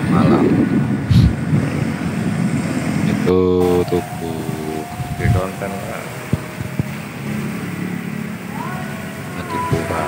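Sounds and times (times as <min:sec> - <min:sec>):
motorbikes passing: 0:00.0 - 0:10.0
street traffic rumble: 0:00.0 - 0:10.0.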